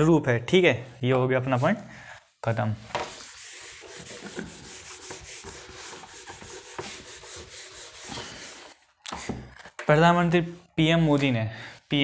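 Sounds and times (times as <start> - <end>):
rubbing and scratching: 2.9 - 9.7
speech: 9.9 - 12.0.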